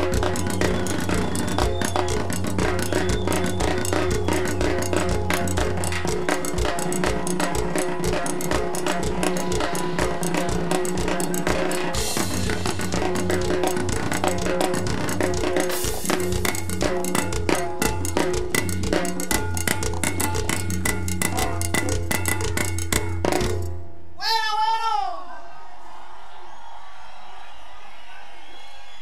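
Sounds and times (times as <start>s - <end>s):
live cumbia band playing: 0.0s - 23.7s
timbales and drum kit strokes: 0.0s - 23.8s.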